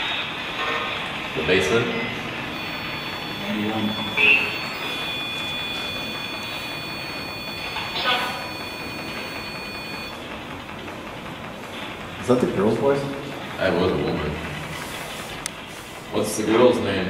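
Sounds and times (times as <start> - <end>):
high-pitched electronic tone: 2.0 - 10.2.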